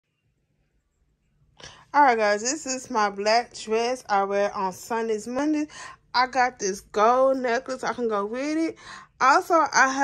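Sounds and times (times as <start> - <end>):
woman speaking: 1.6 - 10.0.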